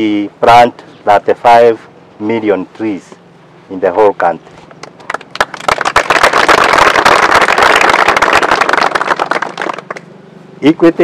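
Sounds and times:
people clapping: 0:04.7 - 0:10.1.

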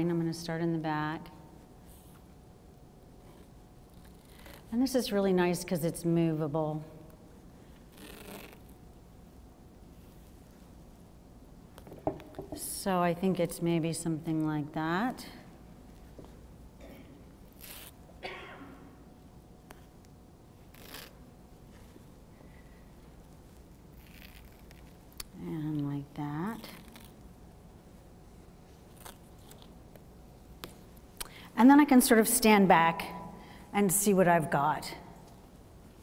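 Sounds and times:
quiet room hum: 0:00.0 - 0:36.0
fabric rustling: 0:07.4 - 0:09.0, 0:19.7 - 0:25.1.

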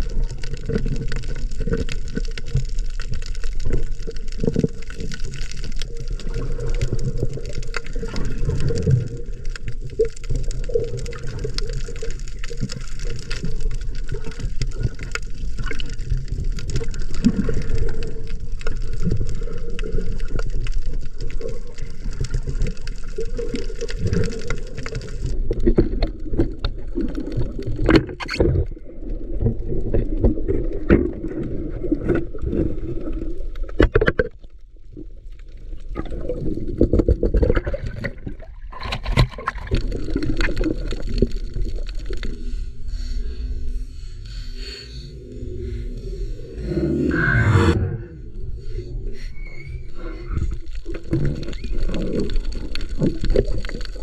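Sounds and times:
water sloshing and bubbling: 0:00.0 - 0:54.0.

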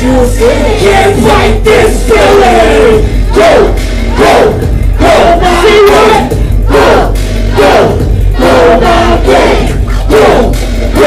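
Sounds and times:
hip-hop beat through pa: 0:00.0 - 0:11.0
shouted vocals: 0:00.0 - 0:11.0.

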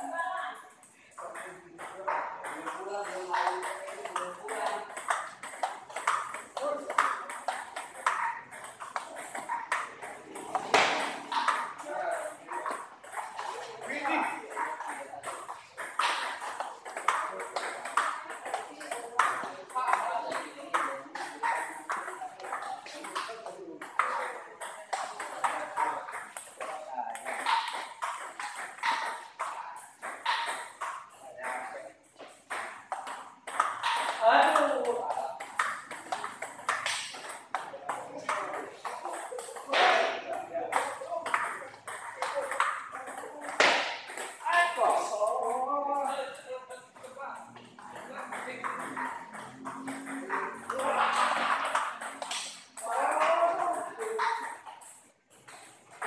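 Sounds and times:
table tennis balls clicking: 0:00.5 - 0:56.0.

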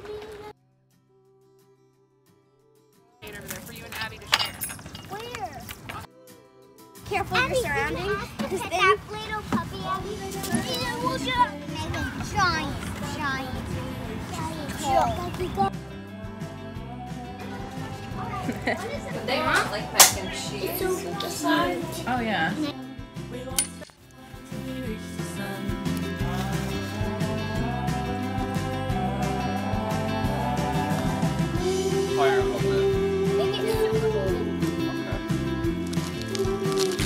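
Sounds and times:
background music: 0:06.1 - 0:37.0
young children chattering: 0:07.0 - 0:15.8, 0:17.2 - 0:22.9, 0:31.6 - 0:37.0.

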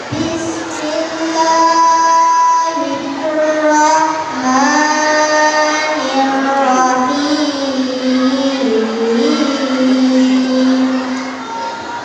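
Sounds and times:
boy chanting through microphone: 0:00.0 - 0:12.0.

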